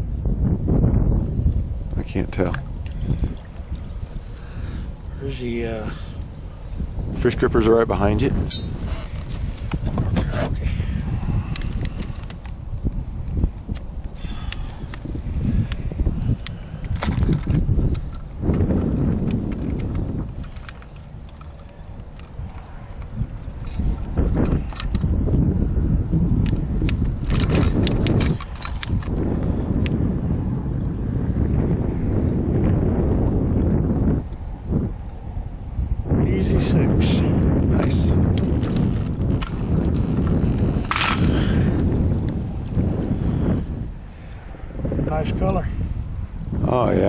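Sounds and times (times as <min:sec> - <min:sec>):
wind buffeting microphone: 0:00.0 - 0:47.0.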